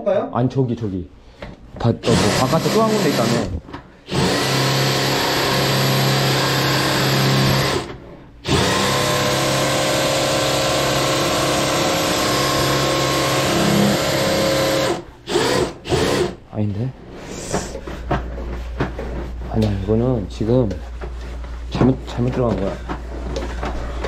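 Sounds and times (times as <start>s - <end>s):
drain cleaning machine motor whine: 2.1s - 3.5s, 4.1s - 16.3s.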